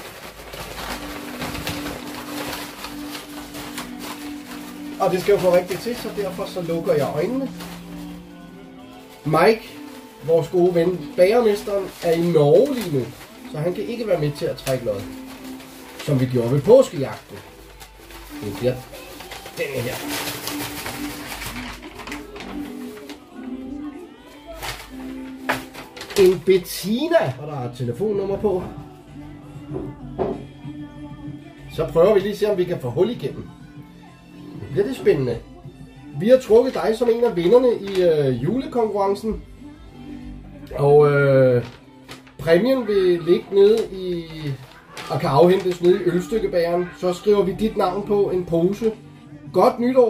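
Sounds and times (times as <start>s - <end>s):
paper rustling and crackling: 0.0s - 27.4s, 36.2s - 39.4s, 40.8s - 49.0s
soft background music: 0.0s - 50.0s.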